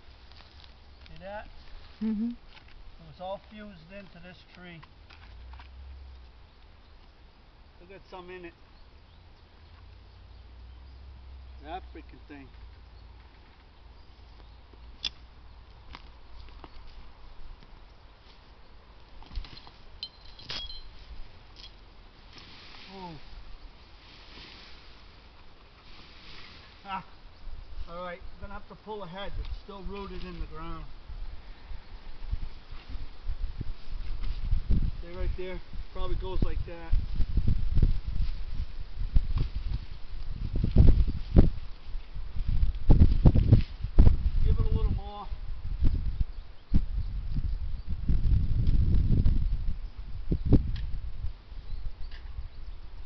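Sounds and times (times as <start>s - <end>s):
rustling: 0.0s - 7.2s, 12.4s - 28.0s
roots and branches snapping: 14.8s - 17.0s
footsteps on grass: 22.2s - 26.9s.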